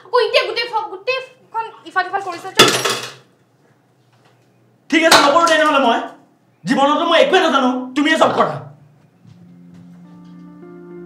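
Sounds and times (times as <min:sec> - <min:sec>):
dishes and cutlery clattering: 0:02.6 - 0:03.3.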